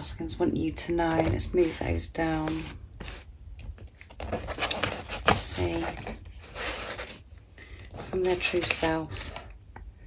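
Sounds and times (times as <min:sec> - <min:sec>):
cards sliding rustle: 0:01.3 - 0:09.5.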